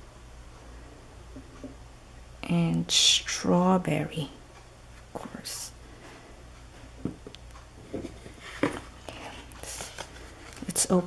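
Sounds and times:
card rustling: 0:08.0 - 0:11.0.

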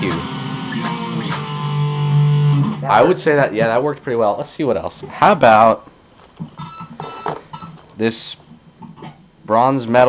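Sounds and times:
ringing guitar notes: 0:00.0 - 0:03.1
electric guitar strum: 0:00.0 - 0:03.3.

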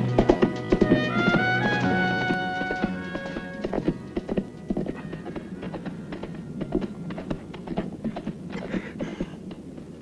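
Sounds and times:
held music chord: 0:00.0 - 0:07.1
horse hooves clip-clopping: 0:00.0 - 0:10.0.

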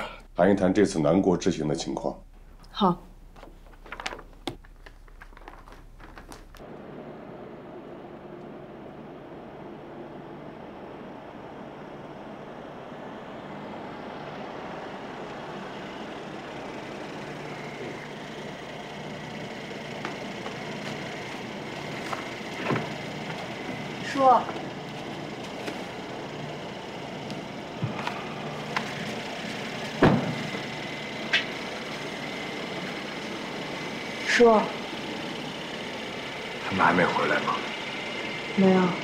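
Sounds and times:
car engine and tyres: 0:01.9 - 0:39.0.

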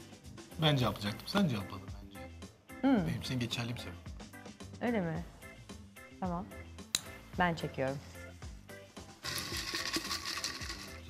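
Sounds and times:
paper slips rustling in glass bowl: 0:09.2 - 0:11.0.

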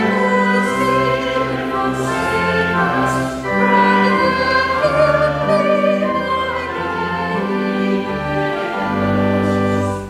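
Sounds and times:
woman singing slow church song: 0:00.0 - 0:07.6
sustained accompaniment: 0:00.0 - 0:10.0.

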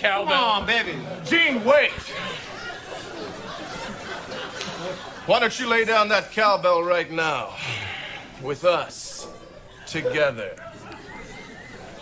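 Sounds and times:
quiet voices talking: 0:00.0 - 0:12.0.

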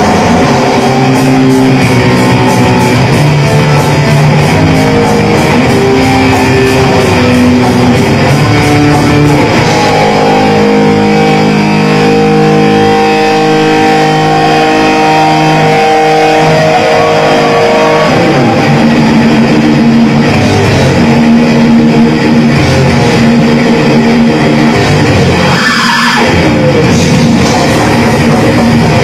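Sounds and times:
death metal band playing: 0:00.0 - 0:29.0.

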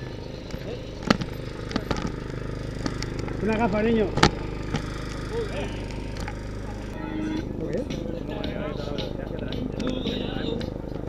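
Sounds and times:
generator engine running: 0:00.0 - 0:11.0
sharp clicks and knocks: 0:00.4 - 0:07.0.

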